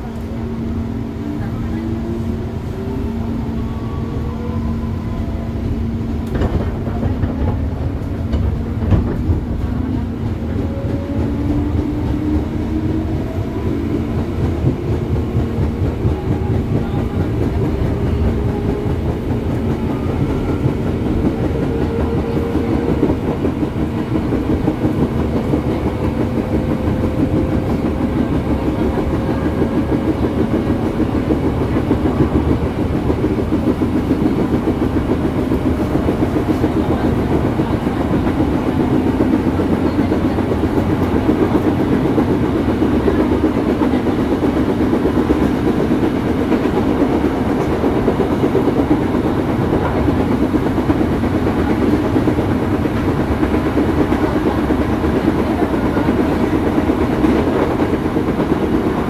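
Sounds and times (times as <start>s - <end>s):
train wheels rumbling on rails: 0.0s - 59.0s.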